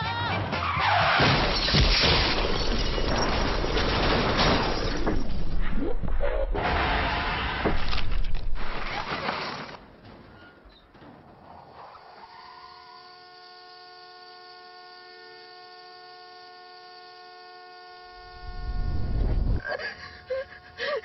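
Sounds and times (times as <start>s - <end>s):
car crash clatter: 0.8s - 5.6s, 6.6s - 11.8s
car horn steady note: 13.2s - 19.1s.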